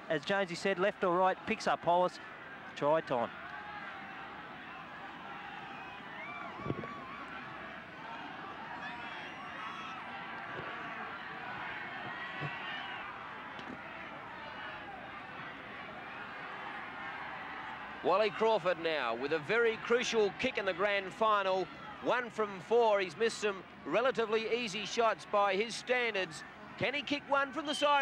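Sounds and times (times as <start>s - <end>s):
crowd hubbub: 3.6s - 24.0s.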